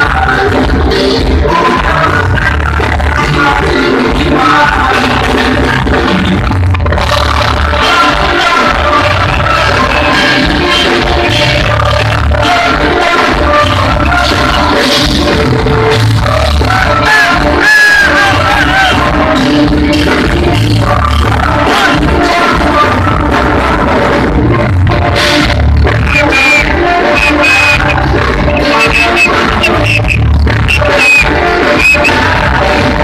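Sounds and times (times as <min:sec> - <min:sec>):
heavy bass: 0:00.0 - 0:33.0
live pop-rock band playing: 0:00.0 - 0:33.0
man singing: 0:00.0 - 0:33.0
sustained high synth tones: 0:26.1 - 0:32.1.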